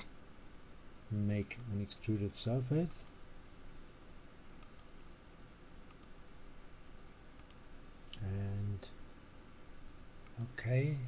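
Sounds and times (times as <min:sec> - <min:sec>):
low room hum: 0:00.0 - 0:11.0
computer mouse clicks: 0:01.3 - 0:01.8, 0:04.4 - 0:05.2, 0:05.8 - 0:06.2, 0:07.4 - 0:08.2, 0:10.2 - 0:10.6.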